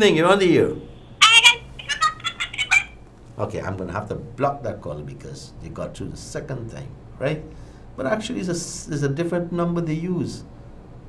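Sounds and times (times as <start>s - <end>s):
shrill voice over phone line: 1.2s - 3.0s.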